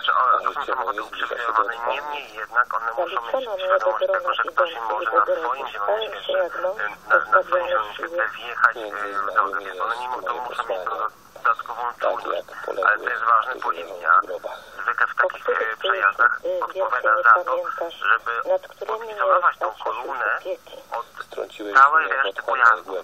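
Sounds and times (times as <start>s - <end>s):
person talking: 0.0s - 23.0s.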